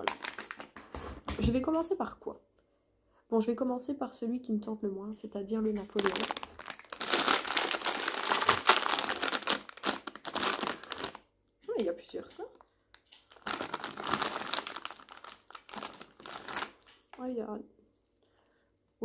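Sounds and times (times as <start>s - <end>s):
plastic bag crinkling: 0.0s - 0.8s, 5.7s - 11.2s, 12.9s - 17.2s.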